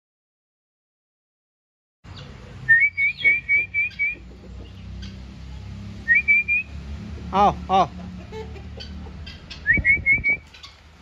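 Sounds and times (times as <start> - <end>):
bird whistled call: 2.7 - 4.2, 6.0 - 6.7, 9.6 - 10.7.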